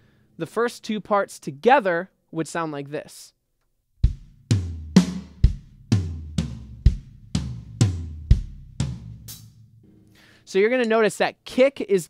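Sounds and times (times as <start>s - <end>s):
kick drum: 4.0s - 9.1s
drum kit fill: 4.0s - 11.0s.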